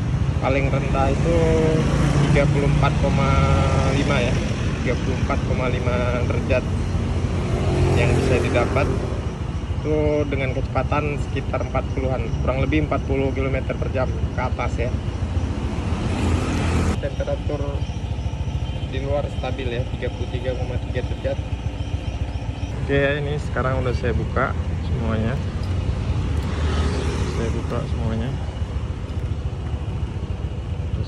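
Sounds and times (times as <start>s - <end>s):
passing traffic: 0.0s - 31.0s
scooter engine idling: 0.0s - 31.0s.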